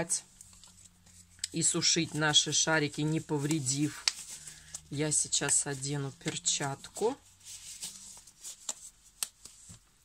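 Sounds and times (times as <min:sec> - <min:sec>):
glove rustling: 0:00.3 - 0:10.0.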